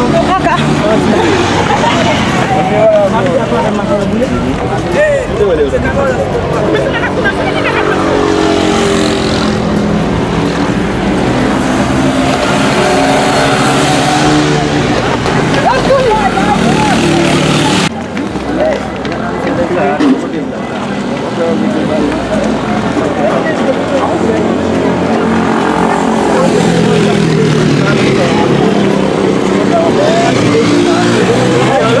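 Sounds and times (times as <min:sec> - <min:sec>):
voices in a street: 0:00.0 - 0:32.0.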